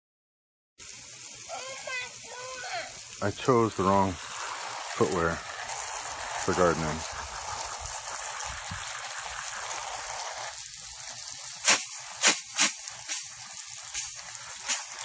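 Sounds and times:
garden hose spraying water: 0.8 - 15.0
water splashing: 1.5 - 15.0.

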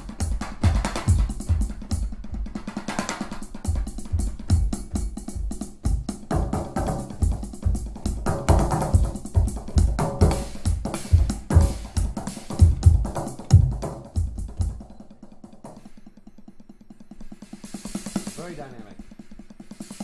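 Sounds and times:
electronic drum hits: 3.7 - 14.9.

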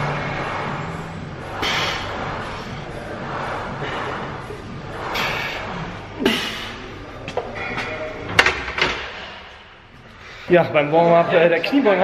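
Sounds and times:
breathy exhales: 1.5 - 2.8.

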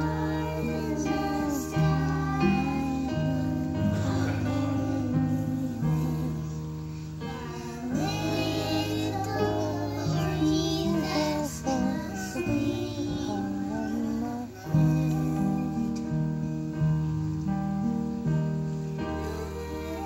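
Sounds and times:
children's choir singing: 0.0 - 16.8, 18.9 - 20.0.

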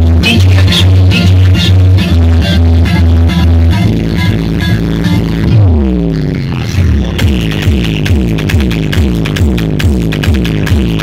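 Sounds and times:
electronic dance music: 0.0 - 11.0
falling bass notes: 0.0 - 11.0.

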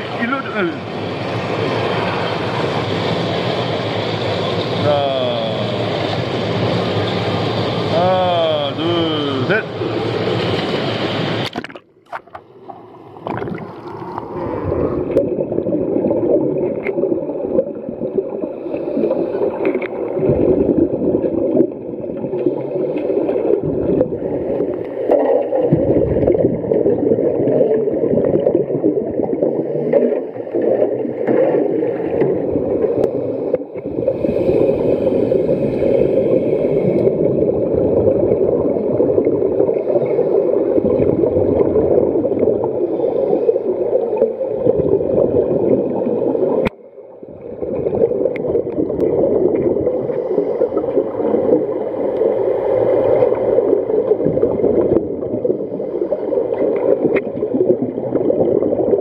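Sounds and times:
underwater gurgling rush of water: 0.0 - 59.0
divers exhaling bubbles: 11.4 - 59.0.

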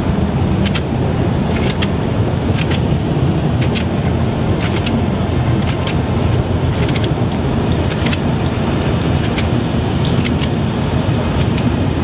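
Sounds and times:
idling vehicles rumbling: 0.0 - 12.0
sharp clicks: 0.6 - 0.9, 1.5 - 2.9, 3.6 - 3.9, 4.6 - 5.0, 5.6 - 6.0, 6.7 - 8.3, 9.2 - 10.6, 11.4 - 11.7.

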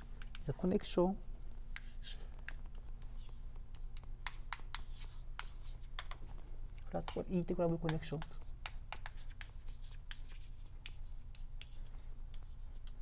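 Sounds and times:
low room hum: 0.0 - 13.0
chalk tapping and scratching: 1.8 - 6.2, 6.9 - 13.0.

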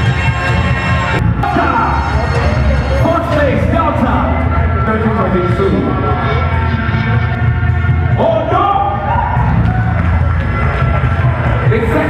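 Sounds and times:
music with deep bass: 0.0 - 12.0
crowd cheering: 6.0 - 12.0.

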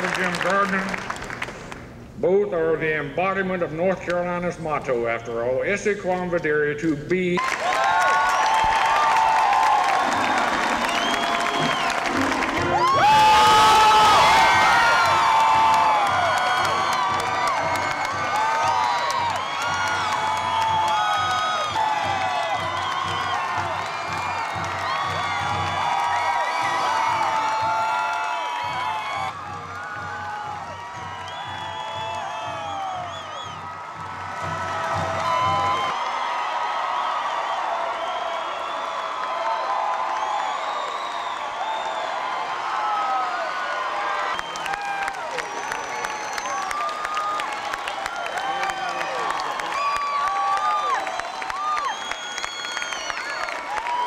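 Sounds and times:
crowd clapping: 0.0 - 2.0, 7.4 - 54.0
crowd cheering and shouting: 7.4 - 54.0
steady low drum beat: 8.7 - 36.0
band playing: 9.0 - 35.9.

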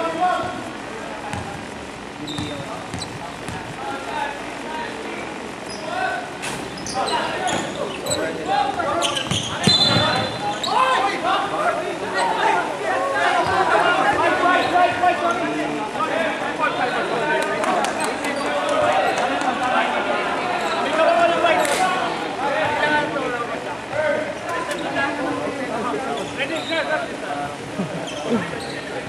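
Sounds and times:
shoe squeaks: 2.2 - 3.6, 5.6 - 6.0, 6.6 - 11.0, 26.1 - 27.0, 28.0 - 29.0.

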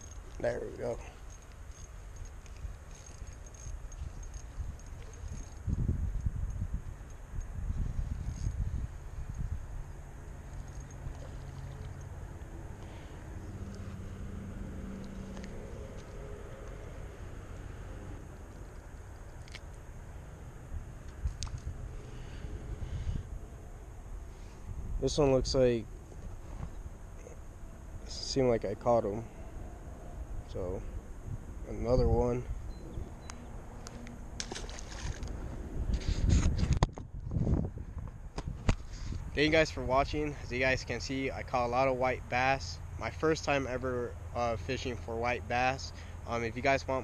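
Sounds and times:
wind rumbling on microphone: 1.0 - 41.0.

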